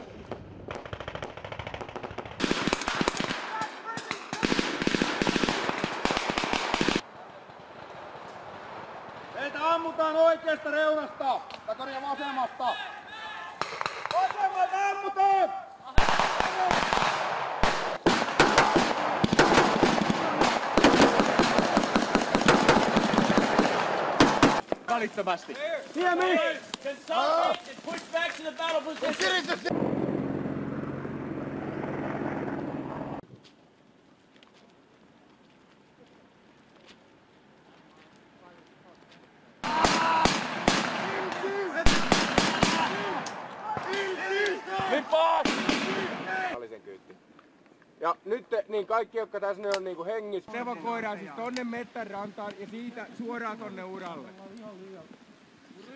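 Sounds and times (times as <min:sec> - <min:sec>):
rapid gunfire: 0:00.8 - 0:07.0, 0:16.0 - 0:24.6, 0:39.6 - 0:43.2, 0:45.4 - 0:46.3
men shouting: 0:39.6 - 0:42.0, 0:42.6 - 0:46.6.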